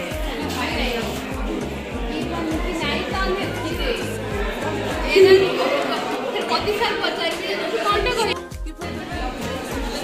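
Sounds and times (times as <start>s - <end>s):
music with repeating bass beat: 0.0s - 5.7s, 8.0s - 10.0s
young women chattering: 0.0s - 10.0s.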